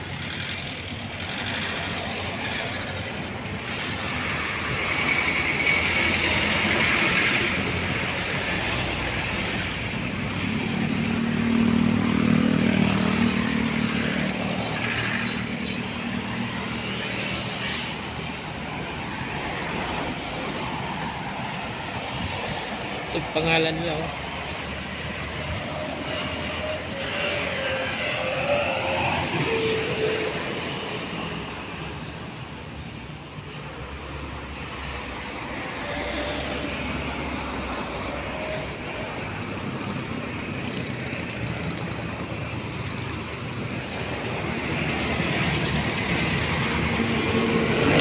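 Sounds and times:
road traffic going by: 0:00.0 - 0:48.0.

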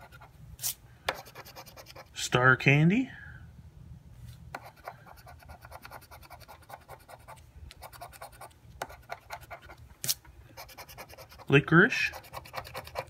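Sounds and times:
metal tool scratching ticket: 0:04.6 - 0:09.8, 0:10.6 - 0:13.0.

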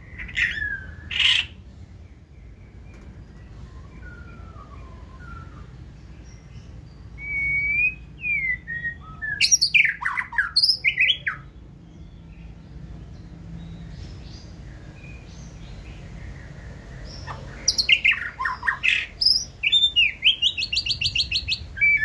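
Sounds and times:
bird singing whistled song: 0:00.0 - 0:01.6, 0:02.7 - 0:12.3, 0:17.2 - 0:22.0.

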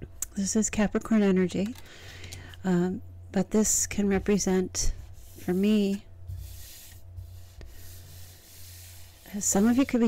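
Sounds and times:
cards sliding over tabletop: 0:05.1 - 0:10.0.

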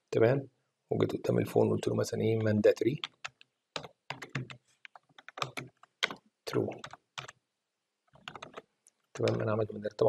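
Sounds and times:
computer keyboard typing: 0:02.3 - 0:07.4, 0:08.1 - 0:09.4.

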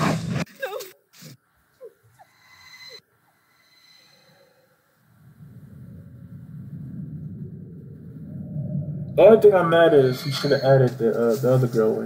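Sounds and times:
low steady rumble: 0:05.0 - 0:12.0.

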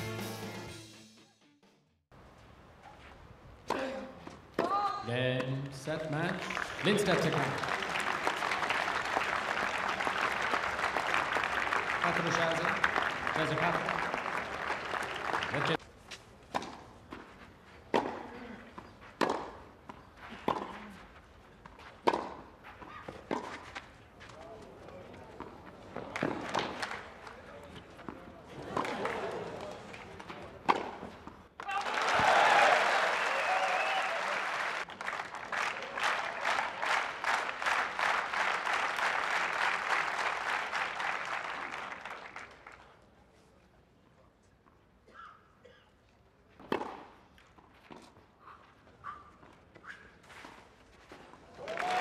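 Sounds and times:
crowd cheering and applauding: 0:06.4 - 0:15.8, 0:31.6 - 0:42.6, 0:51.6 - 0:52.0
tennis ball hit by racquets: 0:16.5 - 0:21.0, 0:21.7 - 0:23.9, 0:25.4 - 0:27.0, 0:30.2 - 0:32.3, 0:46.5 - 0:48.2.

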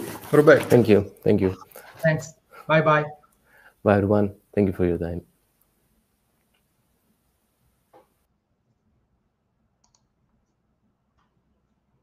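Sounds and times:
faint clicks: 0:09.8 - 0:11.4.

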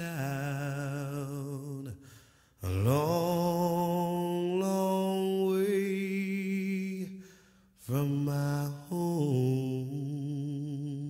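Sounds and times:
a cappella singing held notes: 0:00.0 - 0:02.0, 0:07.8 - 0:11.0.

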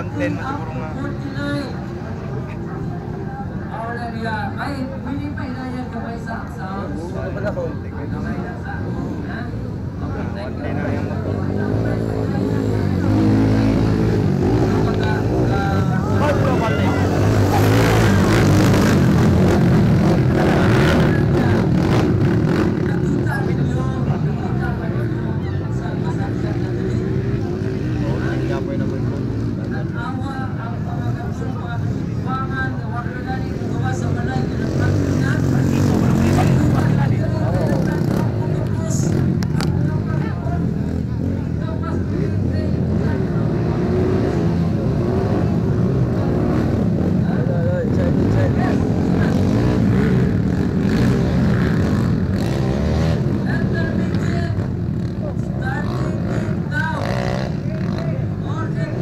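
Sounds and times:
crowd chatter: 0:00.0 - 0:59.0
dirt bike engines revving: 0:00.0 - 0:59.0.

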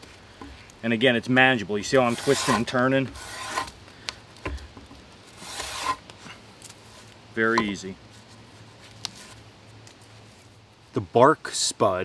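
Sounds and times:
blade scraping bark: 0:02.0 - 0:03.8, 0:05.4 - 0:06.4.

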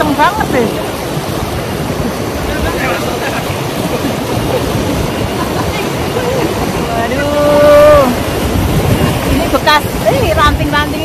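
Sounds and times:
river rapids rushing: 0:00.0 - 0:11.0.

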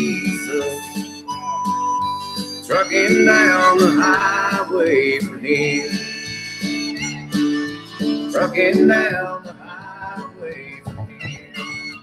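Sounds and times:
instrumental guitar music: 0:00.0 - 0:12.0.

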